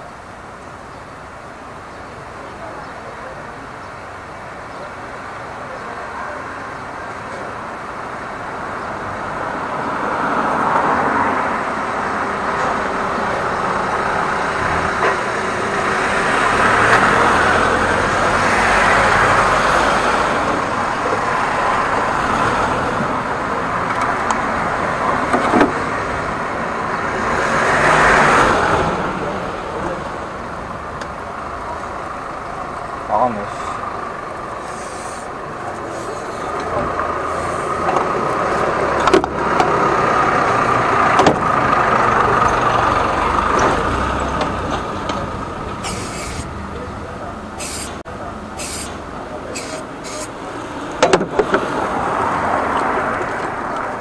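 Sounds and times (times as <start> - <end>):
vehicles passing: 0.0 - 54.0.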